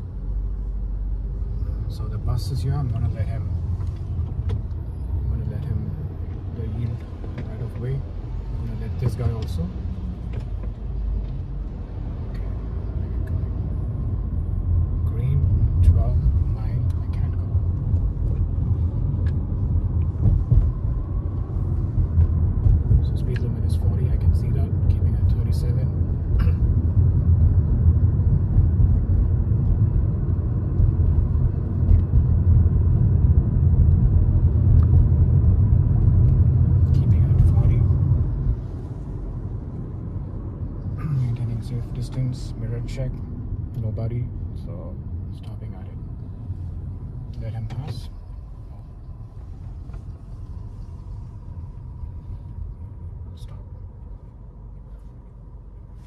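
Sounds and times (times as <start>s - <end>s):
car interior road rumble: 0.0s - 56.0s.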